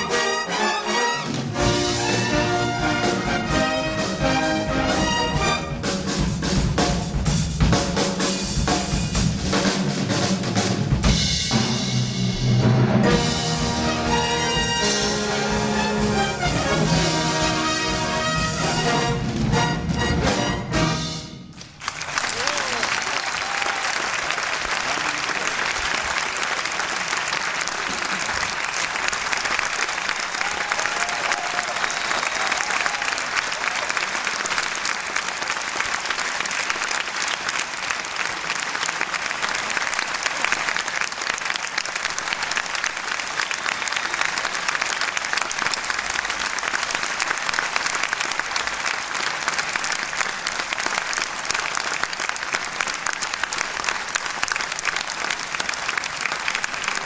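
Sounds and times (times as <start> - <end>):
audience applauding: 21.5 - 57.0.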